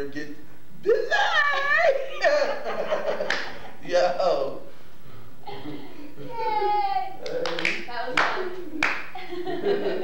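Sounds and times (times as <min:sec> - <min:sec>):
sharp hand claps: 0:03.2 - 0:03.6, 0:07.2 - 0:09.1.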